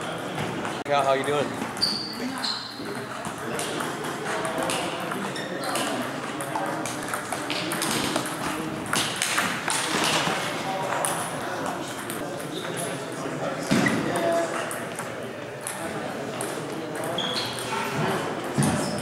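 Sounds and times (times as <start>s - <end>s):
murmur of voices: 0.0s - 19.0s
table tennis balls clicking: 2.8s - 12.9s, 14.1s - 17.7s.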